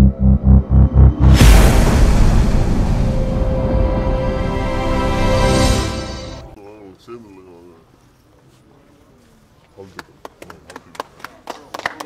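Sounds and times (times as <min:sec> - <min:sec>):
people clapping: 0:09.8 - 0:12.0.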